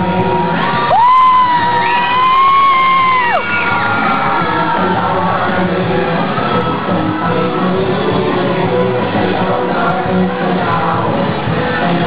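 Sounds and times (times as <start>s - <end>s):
dance music: 0.0s - 12.0s.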